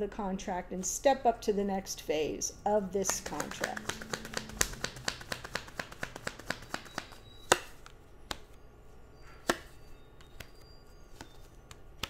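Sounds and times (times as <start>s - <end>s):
cards being shuffled: 3.0s - 8.5s
card snaps: 3.1s - 7.7s.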